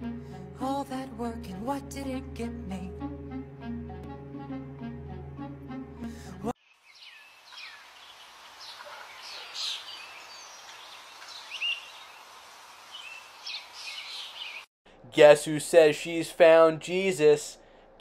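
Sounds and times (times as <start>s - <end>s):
music: 0.0s - 6.6s
small birds chirping: 6.6s - 14.7s
background hiss: 6.6s - 18.0s.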